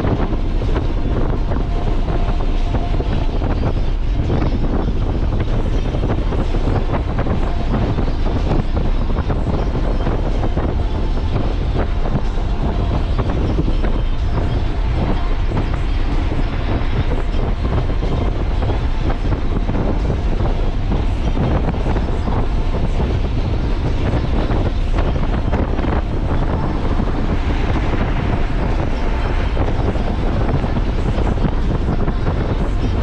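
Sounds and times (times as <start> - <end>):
car engine and tyre rumble: 0.0 - 33.0.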